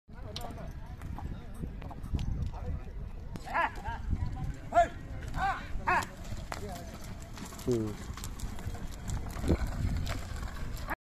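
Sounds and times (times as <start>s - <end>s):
hoof clicks: 0.1s - 11.0s
load scraping over dirt: 4.2s - 11.0s
people shouting: 4.7s - 6.1s.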